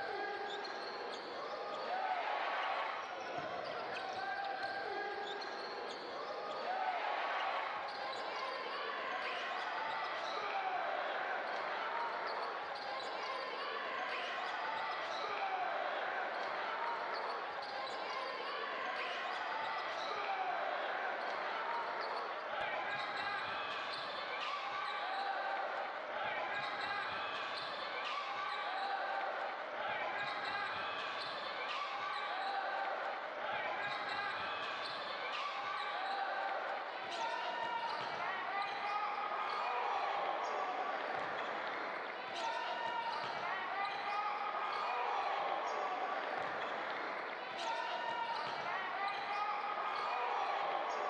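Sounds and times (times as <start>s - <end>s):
crowd voices: 0.0s - 51.0s
sneaker squeaks: 0.3s - 1.9s, 3.0s - 6.7s, 7.8s - 8.4s, 12.2s - 13.5s, 16.2s - 20.1s, 21.2s - 25.4s, 26.5s - 29.1s, 30.1s - 32.9s, 33.7s - 39.6s, 41.0s - 45.4s, 46.2s - 51.0s.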